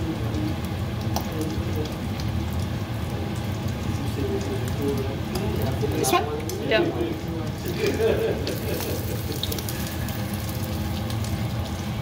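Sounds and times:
hot oil sizzling and crackling: 0.0s - 12.0s.

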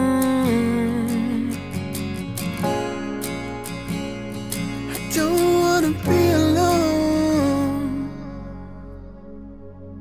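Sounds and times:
soft instrumental backing: 0.0s - 10.0s
man singing wordless note: 5.0s - 8.5s.

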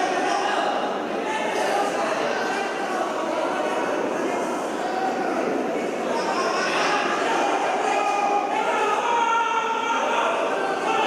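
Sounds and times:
crowd talking and shouting: 0.0s - 11.0s.

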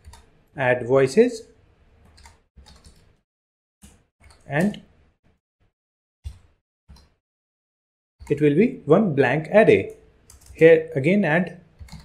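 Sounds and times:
computer keyboard typing: 2.0s - 3.1s, 10.3s - 10.6s, 11.8s - 12.0s.

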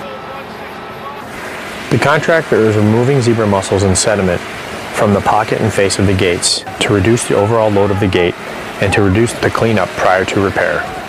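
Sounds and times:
faint hum: 0.0s - 11.0s
water: 0.0s - 11.0s
wind: 0.0s - 11.0s.

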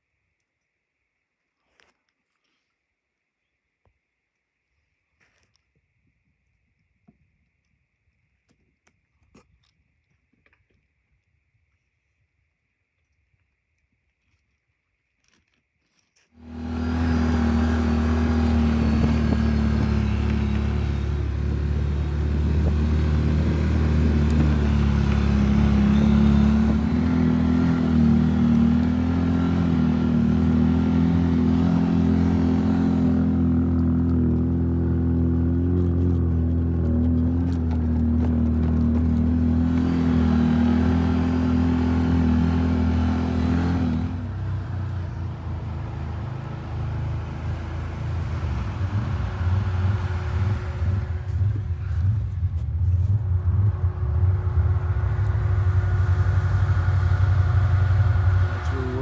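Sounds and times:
atv engine running: 16.4s - 59.0s.

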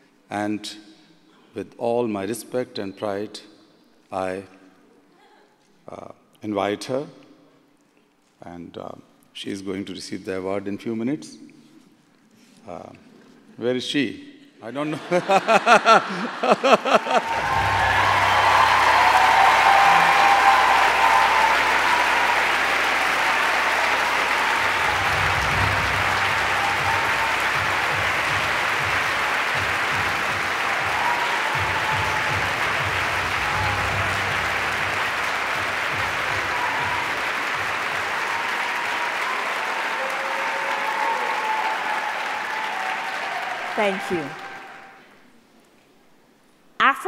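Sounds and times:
audience applauding: 15.3s - 45.1s.

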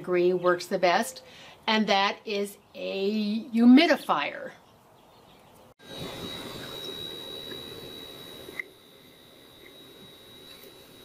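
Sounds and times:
humidifier hissing: 5.8s - 11.0s
thin high whine: 5.8s - 11.0s.

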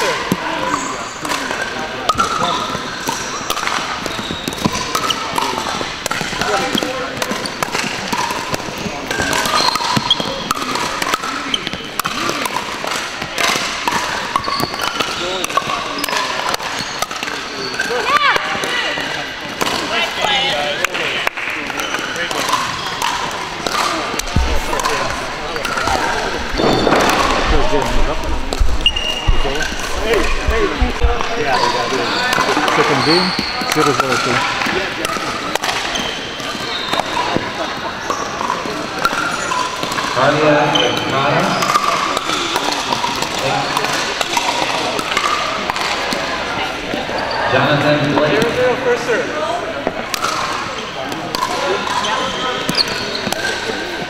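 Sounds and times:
many voices talking indistinctly: 0.0s - 54.0s
paddles striking plastic balls: 0.2s - 40.4s, 41.4s - 46.4s, 49.8s - 53.6s.

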